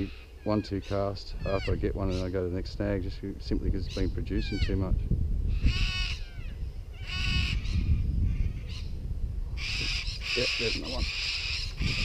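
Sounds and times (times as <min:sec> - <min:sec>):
harsh bird calls: 0:00.0 - 0:03.0, 0:03.7 - 0:12.0
steady low rumble: 0:00.2 - 0:10.3.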